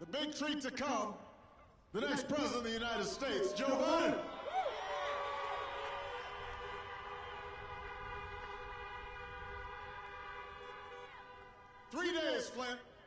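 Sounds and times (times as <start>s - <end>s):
many car horns honking: 6.1s - 12.1s.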